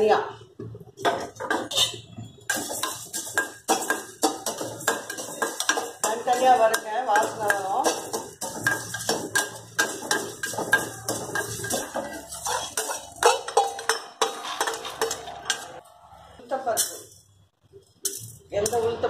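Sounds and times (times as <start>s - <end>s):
steel spoon scraping metal pan: 1.4s - 15.8s.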